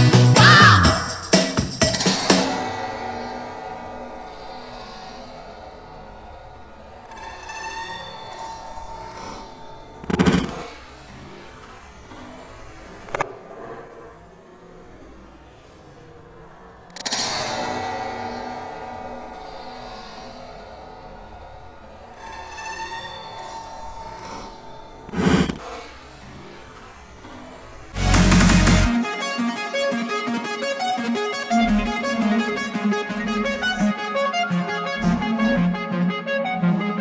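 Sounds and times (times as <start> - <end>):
skates grinding metal rail: 2.1 - 11.2, 16.0 - 28.5.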